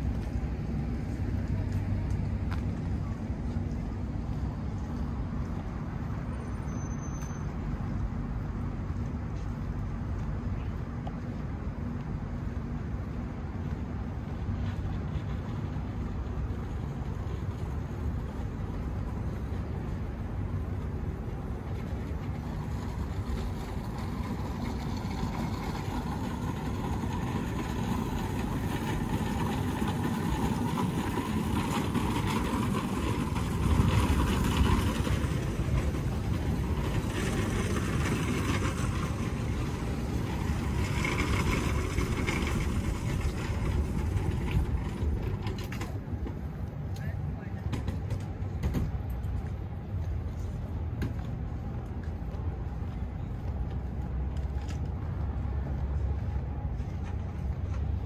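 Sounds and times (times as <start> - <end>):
indistinct voices of passers-by: 0.0 - 58.0
low rumble of traffic: 0.0 - 58.0.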